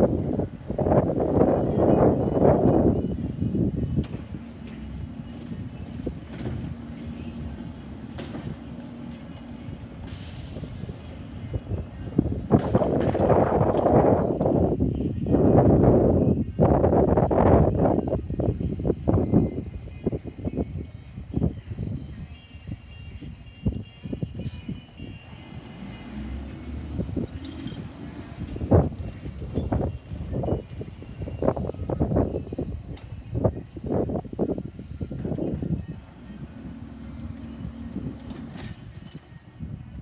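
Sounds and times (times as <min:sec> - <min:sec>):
distant garbage truck running: 0:00.0 - 0:21.8, 0:23.6 - 0:40.0
wind rumbling on microphone: 0:00.0 - 0:40.0
high air hiss: 0:10.0 - 0:11.4.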